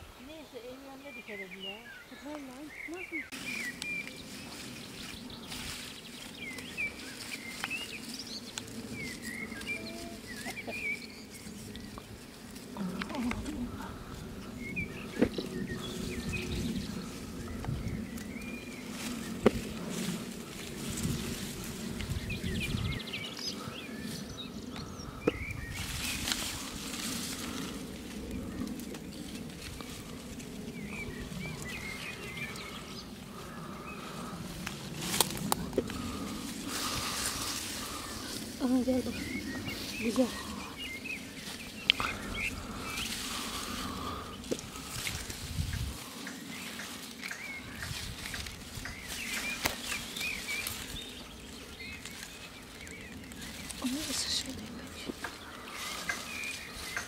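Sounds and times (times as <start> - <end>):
leaves rustling under hands: 0.0 - 57.0
small birds chirping: 0.0 - 57.0.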